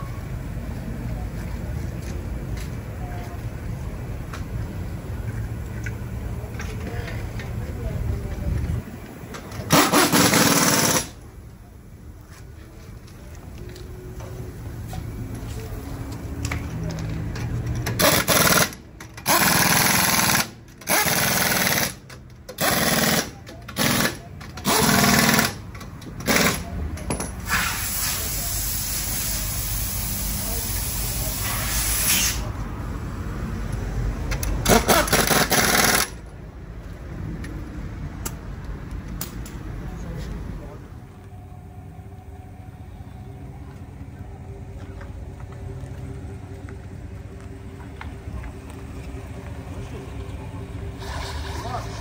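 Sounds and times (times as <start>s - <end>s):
pneumatic impact wrench rattling: 9.4s - 11.2s, 17.7s - 28.3s, 34.4s - 36.2s.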